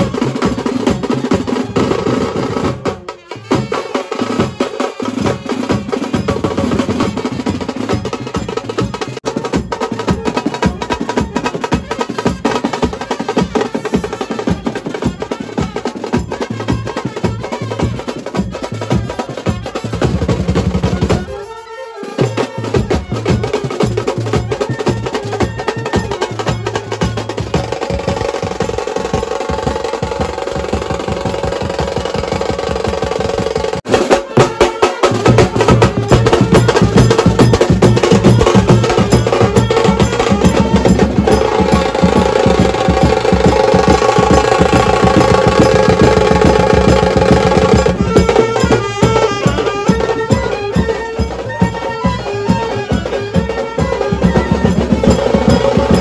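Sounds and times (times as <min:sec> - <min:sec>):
snare and bass drums: 0:00.0 - 0:21.5, 0:22.2 - 0:56.0
saxophones and trumpets: 0:00.0 - 0:56.0.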